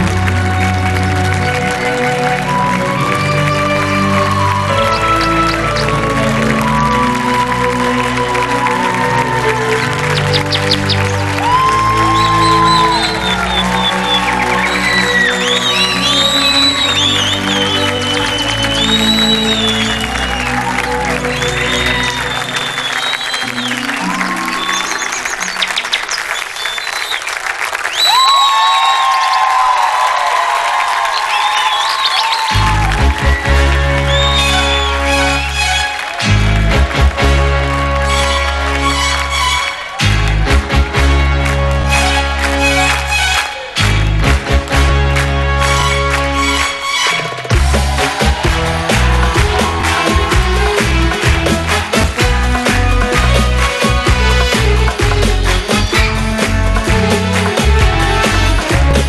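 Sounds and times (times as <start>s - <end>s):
audience applause: 0.0s - 59.0s
crowd cheering: 0.0s - 59.0s
band playing instrumental: 33.7s - 59.0s.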